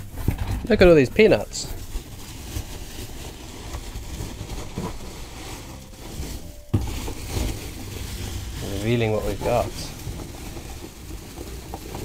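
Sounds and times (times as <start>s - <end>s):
packing peanuts rustling and squeaking: 0.0s - 12.0s.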